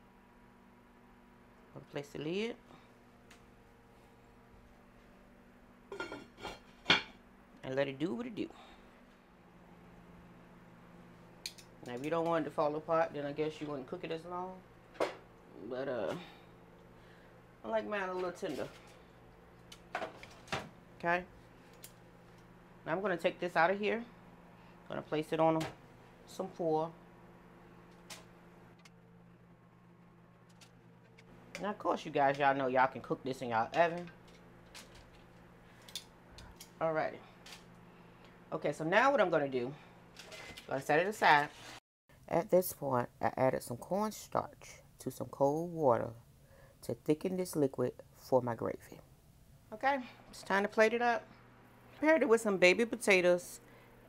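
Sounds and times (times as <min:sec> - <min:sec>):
person speaking: 0:17.6 - 0:18.8, 0:31.6 - 0:34.1.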